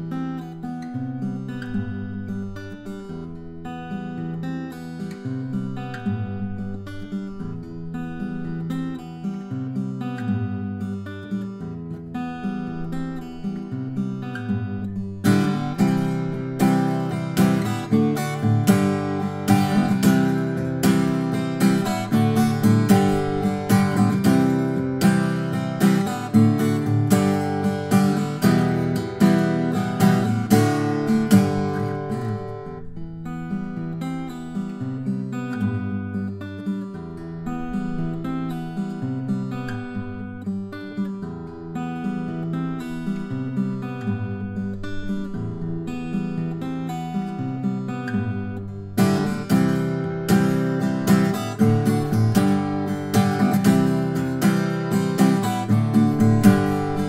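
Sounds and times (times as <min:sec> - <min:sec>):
fingerpicked acoustic guitar: 0:00.0 - 0:57.0.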